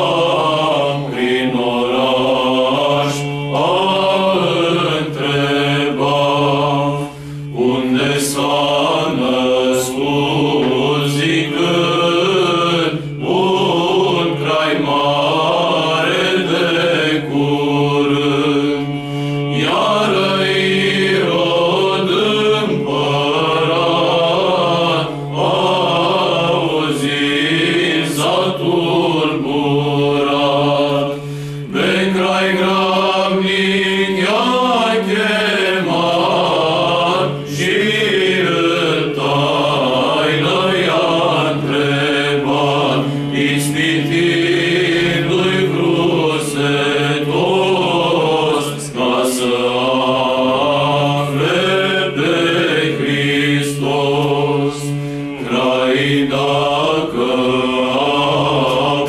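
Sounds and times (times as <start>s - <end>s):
men's choir singing a cappella: 0.0s - 59.0s.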